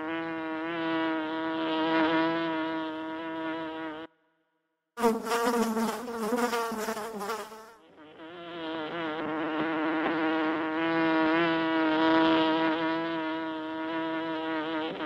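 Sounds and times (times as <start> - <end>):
bees buzzing: 5.0 - 15.0.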